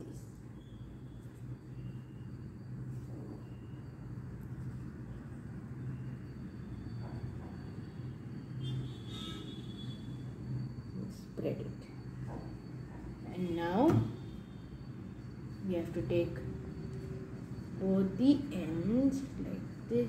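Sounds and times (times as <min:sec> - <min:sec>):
low background rumble and hum: 0:00.0 - 0:20.0.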